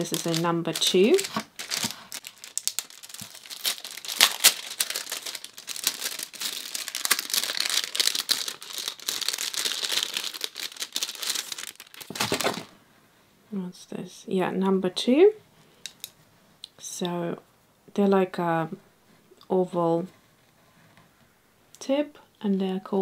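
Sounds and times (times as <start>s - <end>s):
plastic packaging crinkling: 0.0s - 12.8s.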